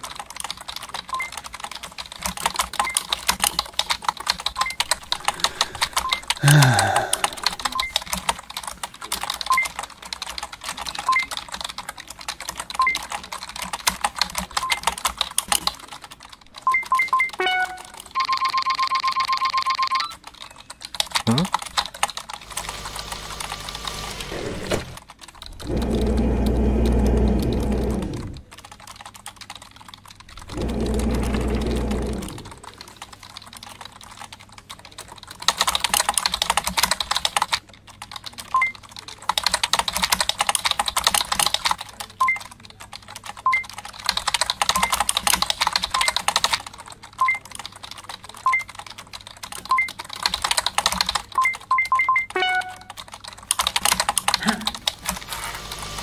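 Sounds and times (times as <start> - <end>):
computer keyboard typing: 0.0 - 56.0
loud low hum: 25.6 - 28.4.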